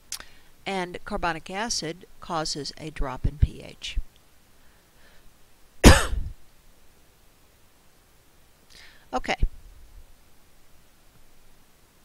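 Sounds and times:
person coughing: 5.8 - 6.3.

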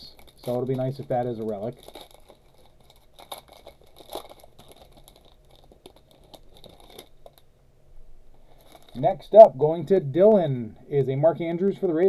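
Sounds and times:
wrapper crinkling and tearing: 0.0 - 7.5, 8.5 - 9.3.

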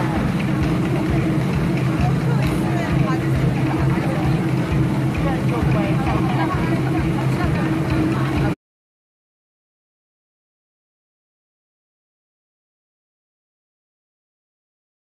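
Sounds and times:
audience voices talking: 0.0 - 8.6
loud steady low hum: 0.0 - 8.6.

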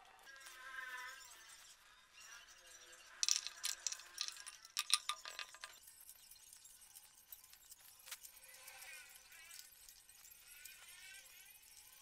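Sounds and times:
metal bolts clinking in hand: 3.2 - 5.8.

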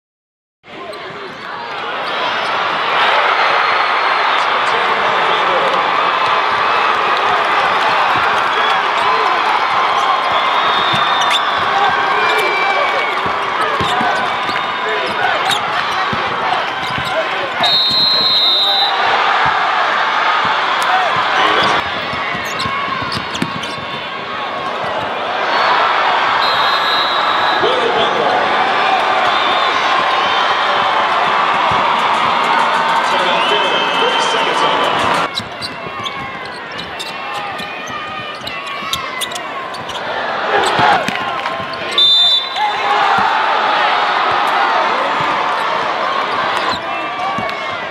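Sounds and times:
crowd noise: 0.6 - 47.9
basketball bouncing on wooden court: 13.1 - 14.6, 15.5 - 17.1, 20.4 - 24.1, 35.3 - 40.0.

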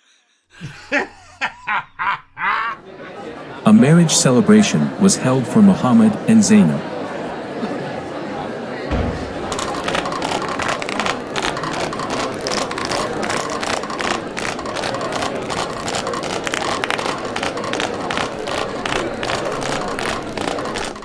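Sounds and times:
crowd clapping: 9.1 - 21.0.

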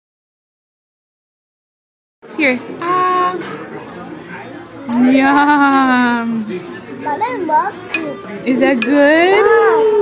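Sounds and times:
background chatter: 2.2 - 10.0.

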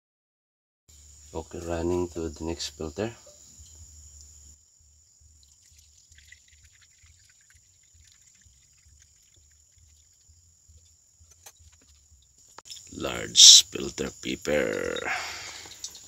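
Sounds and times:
faint liquid pouring: 5.1 - 11.0.

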